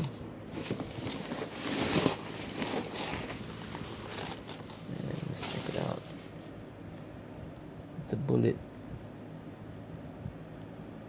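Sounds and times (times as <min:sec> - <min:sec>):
room hum and hiss: 0:00.0 - 0:11.0.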